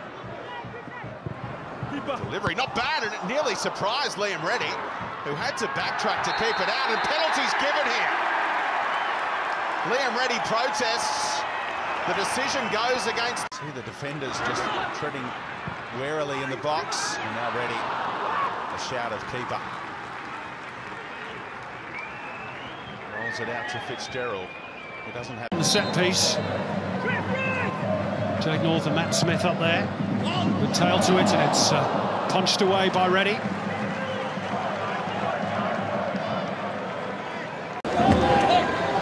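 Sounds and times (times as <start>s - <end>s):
stadium crowd noise: 0.0s - 39.0s.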